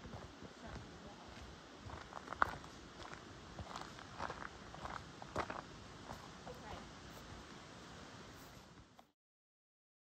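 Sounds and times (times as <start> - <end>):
footsteps on gravel: 0.0 - 6.6.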